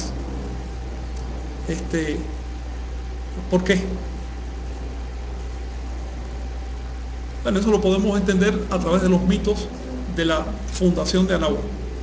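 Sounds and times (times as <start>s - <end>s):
faint high whine: 0.0s - 12.0s
steady low hum: 0.0s - 12.0s.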